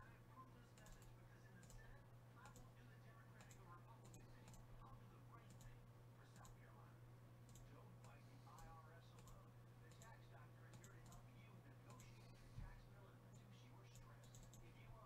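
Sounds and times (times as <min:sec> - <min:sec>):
low steady hum: 0:00.0 - 0:15.0
faint computer mouse clicks: 0:00.8 - 0:02.7, 0:05.5 - 0:06.6, 0:07.5 - 0:11.2, 0:13.9 - 0:14.7.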